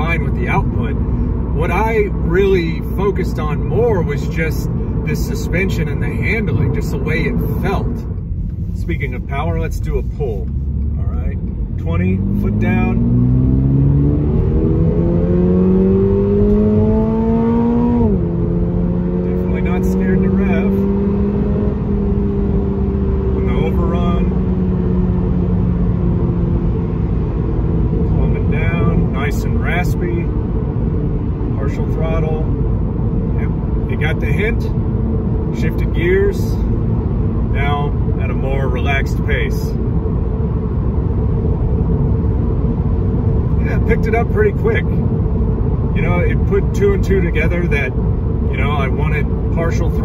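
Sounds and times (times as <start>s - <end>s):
car engine accelerating: 0.0s - 50.0s
road and tyre noise: 0.0s - 50.0s.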